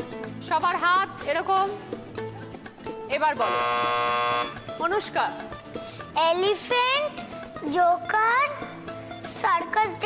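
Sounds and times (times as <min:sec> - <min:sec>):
game show buzzer tone: 0:03.4 - 0:04.6.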